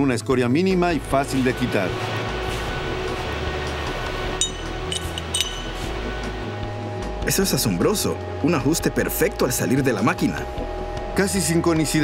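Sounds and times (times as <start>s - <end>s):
background music: 0.0s - 12.0s
ringing metal clinks: 4.4s - 5.9s.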